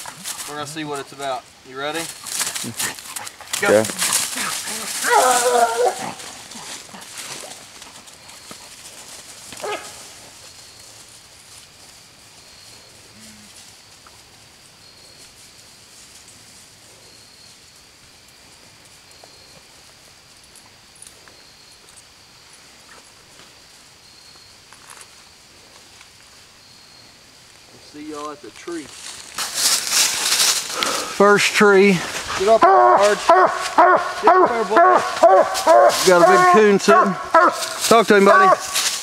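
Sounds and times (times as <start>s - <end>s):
dog barking: 5.0s - 6.2s, 9.6s - 10.0s, 32.6s - 38.8s.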